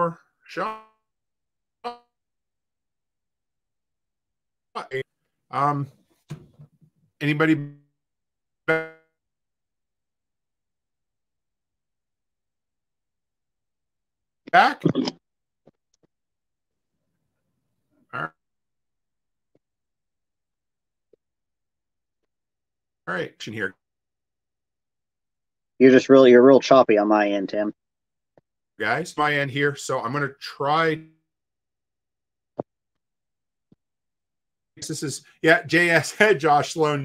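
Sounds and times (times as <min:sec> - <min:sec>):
clipped man's voice on video call: 0:00.0 - 0:01.0, 0:04.7 - 0:06.4, 0:07.1 - 0:07.9, 0:08.6 - 0:09.1, 0:14.5 - 0:15.2, 0:18.1 - 0:18.4, 0:23.0 - 0:23.8, 0:25.8 - 0:27.8, 0:28.8 - 0:31.2, 0:34.7 - 0:37.0.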